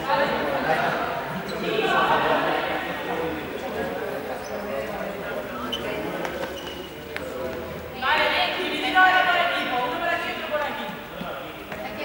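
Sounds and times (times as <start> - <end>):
chatter echoing in sports hall: 0.0 - 12.0.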